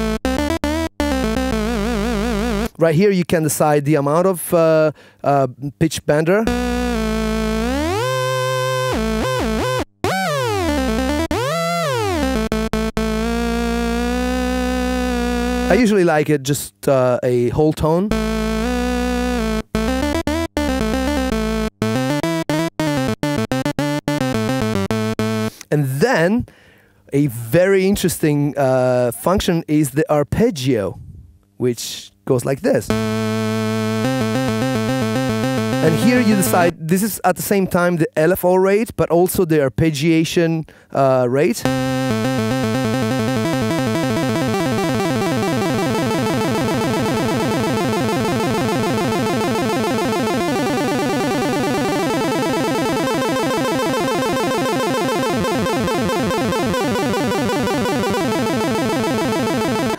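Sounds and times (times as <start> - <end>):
synthesizer note with pitch bend: 0.0 - 2.7, 6.5 - 15.8, 18.1 - 25.5, 32.9 - 36.8, 41.6 - 59.9
short synthesizer notes: 32.9 - 36.8, 41.6 - 59.9.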